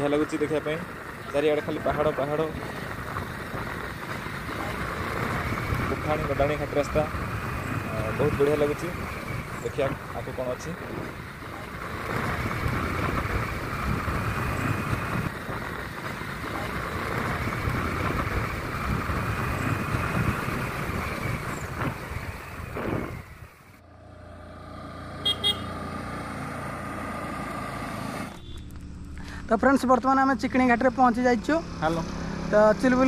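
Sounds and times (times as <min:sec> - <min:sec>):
motorcycle engine: 0:00.0 - 0:33.0
wind noise: 0:01.8 - 0:10.2, 0:10.8 - 0:23.6
horn toot: 0:25.2 - 0:25.8.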